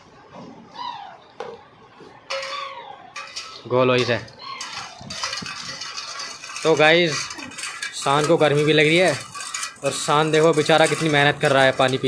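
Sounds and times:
spoon scraping a steel pot: 2.3 - 12.0.

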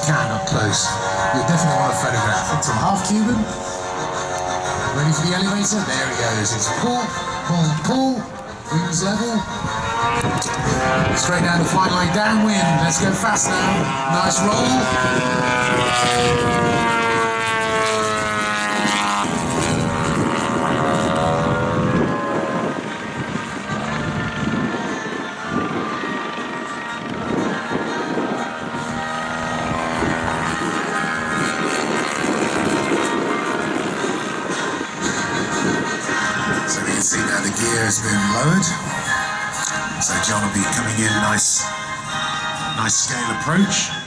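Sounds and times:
model airplane engine in flight: 0.0 - 44.0
music: 4.7 - 12.4, 32.6 - 44.0.

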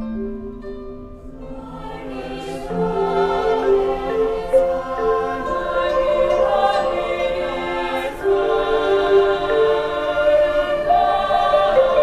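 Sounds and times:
chamber choir singing: 1.4 - 12.0.

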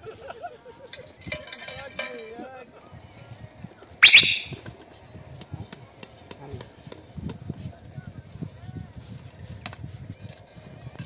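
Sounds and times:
bird whistling high rising calls: 2.9 - 4.7
sharp bird chirp: 4.0 - 4.7.

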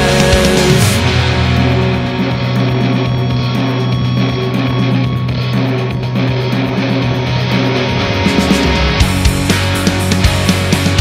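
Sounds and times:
rock guitar playing: 0.0 - 11.0
held low bass note: 0.6 - 9.5.

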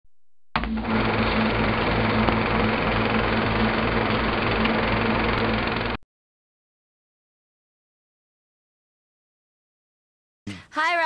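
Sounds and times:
film projector whirring clatter: 0.6 - 6.0.

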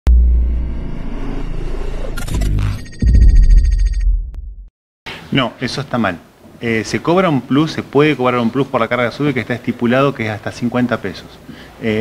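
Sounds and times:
deep bass impact: 0.1 - 4.7.

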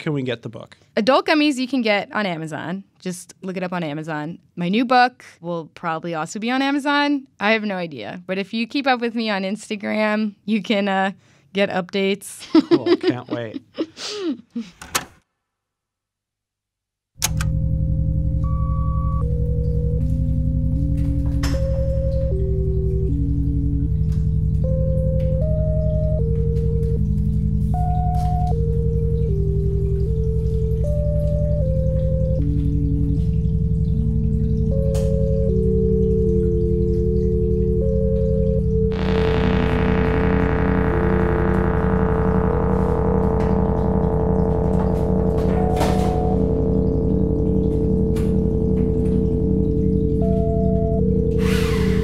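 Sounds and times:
low bass drone: 17.2 - 52.0
slow synthesizer melody: 17.2 - 52.0
buzzy synth tone: 21.7 - 52.0.

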